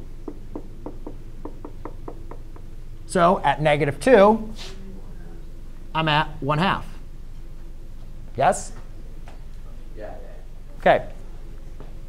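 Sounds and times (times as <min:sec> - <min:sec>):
marker tapping on whiteboard: 0:00.3 - 0:02.7.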